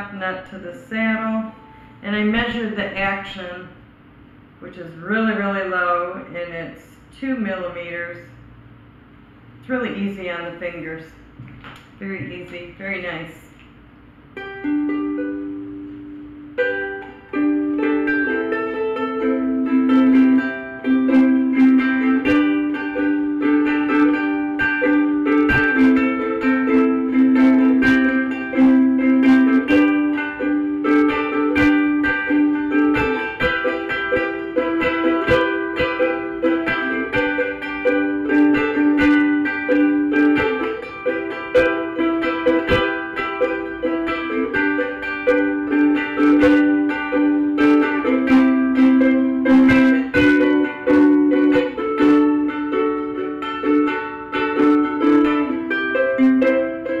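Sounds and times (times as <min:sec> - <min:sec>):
ukulele chords strummed: 0:14.0 - 0:57.0.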